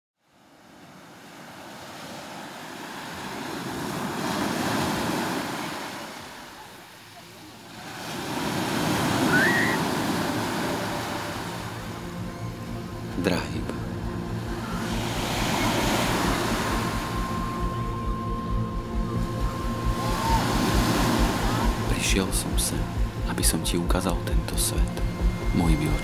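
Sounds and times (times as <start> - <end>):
sea surf breaking on shore: 0.3 - 12.2, 13.0 - 18.4, 19.0 - 26.0.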